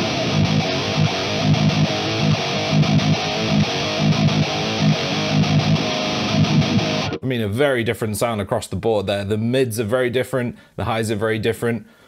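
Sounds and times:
distorted electric guitar riff: 0:00.0 - 0:07.2.

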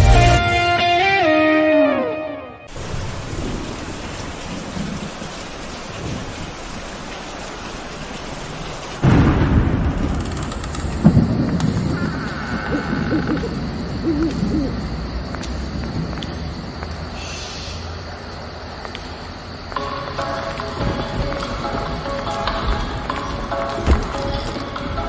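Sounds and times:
thunder rumbling: 0:02.7 - 0:19.6, 0:20.2 - 0:25.0
rain hissing: 0:02.7 - 0:25.0.

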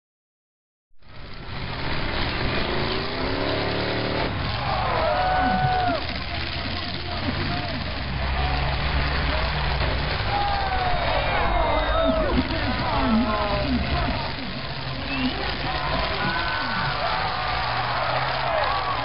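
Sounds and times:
car engines running: 0:01.0 - 0:19.0
engine revving up: 0:01.0 - 0:19.0
crowd din: 0:01.6 - 0:19.0.

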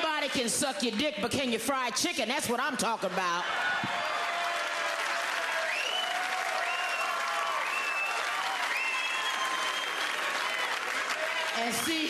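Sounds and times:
audience applauding: 0:03.2 - 0:12.0
high cheers: 0:03.2 - 0:12.0.

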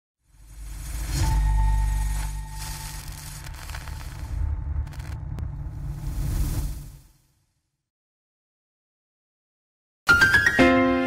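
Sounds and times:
sharp crackles: 0:00.3 - 0:07.2
deep rumble: 0:00.3 - 0:07.4.

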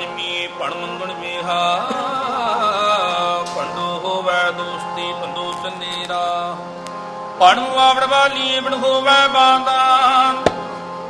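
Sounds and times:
harmoniums playing held notes: 0:00.0 - 0:11.0
man singing with wavering pitch: 0:00.0 - 0:11.0.

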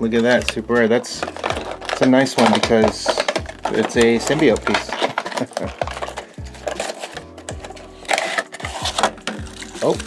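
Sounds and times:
foil packaging crinkling: 0:00.2 - 0:10.0.

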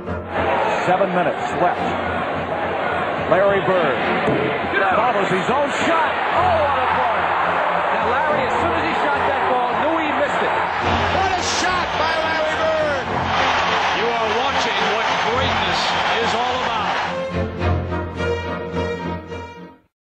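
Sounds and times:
arena crowd cheering and yelling: 0:00.0 - 0:17.9.

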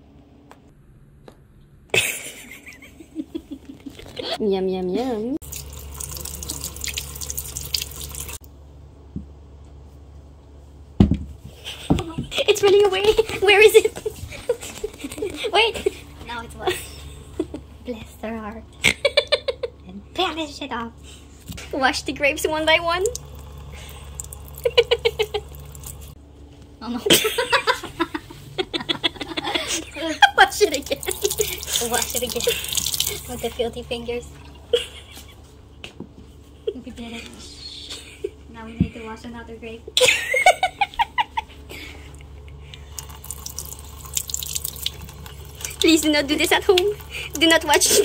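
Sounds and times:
tap water running: 0:05.4 - 0:08.4, 0:21.8 - 0:26.2, 0:30.2 - 0:35.1, 0:42.8 - 0:48.0.

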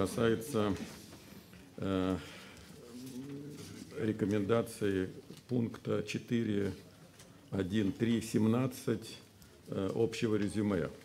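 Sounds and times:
man speaking: 0:00.0 - 0:01.0, 0:01.8 - 0:02.3, 0:03.0 - 0:06.9, 0:07.5 - 0:11.0.

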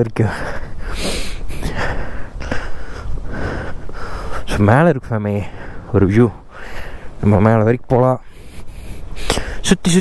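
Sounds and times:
person breathing hard: 0:00.3 - 0:04.5, 0:05.4 - 0:05.9, 0:06.5 - 0:07.2, 0:08.2 - 0:09.6.

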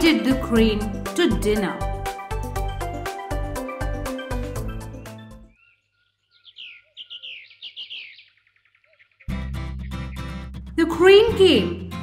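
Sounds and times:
songbird chirping: 0:04.1 - 0:11.9.

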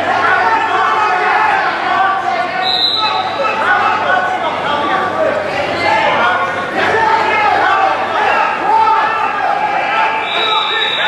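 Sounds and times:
indistinct voices echoing: 0:00.0 - 0:11.0.

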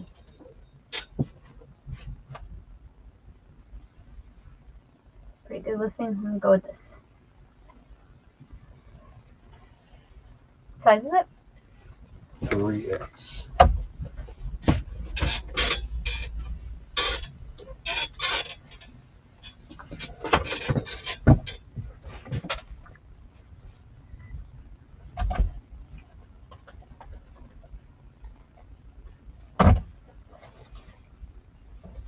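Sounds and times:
hands clicking and rustling at desk: 0:25.4 - 0:29.2.

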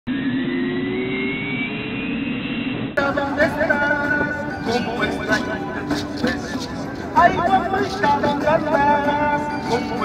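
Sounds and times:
street performers' music: 0:03.0 - 0:10.0.

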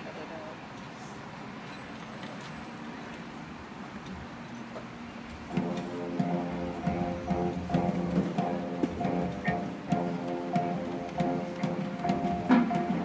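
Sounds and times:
marching band playing: 0:05.5 - 0:13.0.

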